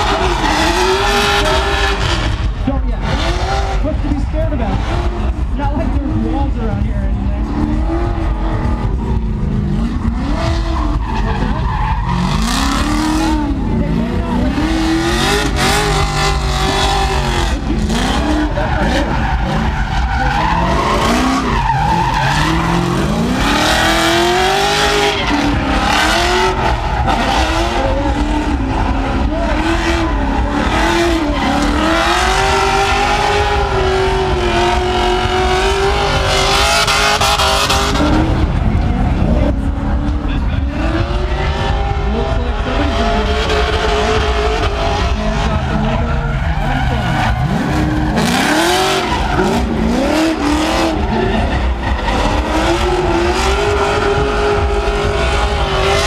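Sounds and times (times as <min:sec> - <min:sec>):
tyres squealing and skidding: 0:00.0 - 0:02.5, 0:07.2 - 0:56.0
car engines at full throttle: 0:00.0 - 0:56.0.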